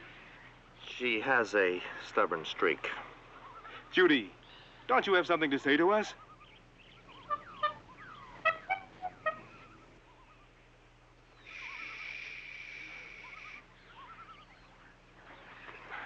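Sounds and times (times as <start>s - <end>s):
bird-like calls: 2.8s - 4.9s, 5.9s - 16.0s.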